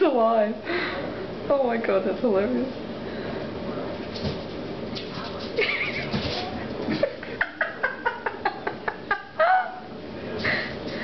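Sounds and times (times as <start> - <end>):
person giggling: 5.6 - 6.2, 6.9 - 9.9.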